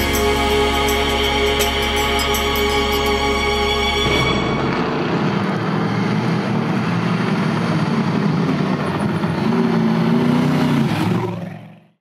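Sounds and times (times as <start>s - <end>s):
truck engine accelerating: 0.0s - 11.5s.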